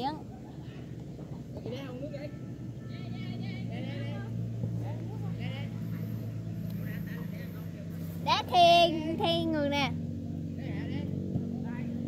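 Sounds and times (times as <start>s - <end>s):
players calling and shouting: 0.0s - 12.0s
low motor hum: 2.6s - 12.0s.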